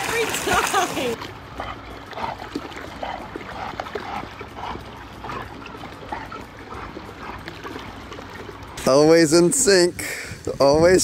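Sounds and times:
water lapping and trickling: 0.0s - 11.0s.

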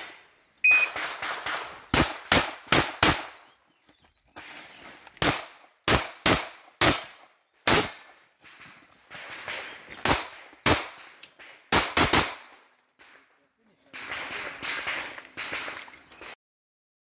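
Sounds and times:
pistol shots: 0.0s - 3.4s, 5.2s - 8.2s, 9.1s - 13.3s, 13.9s - 15.8s
shot timer beep: 0.6s - 1.0s.

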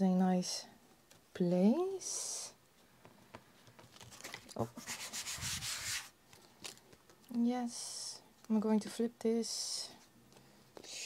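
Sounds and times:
paper rustling and rubbing: 3.8s - 6.2s.

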